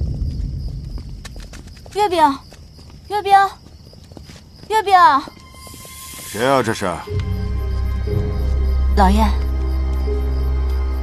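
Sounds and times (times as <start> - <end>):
deep low rumble: 0.0 - 1.9.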